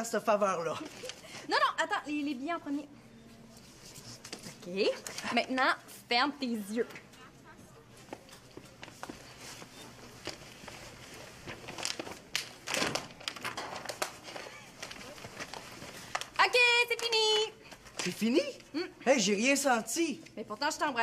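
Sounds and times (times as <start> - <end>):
glossy paper rustling: 0.8 - 1.4, 3.4 - 5.7, 8.0 - 18.7.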